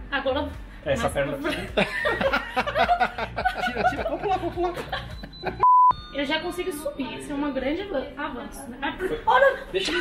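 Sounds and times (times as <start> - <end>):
laughter: 1.5 - 5.6
censor bleep: 5.2 - 6.2.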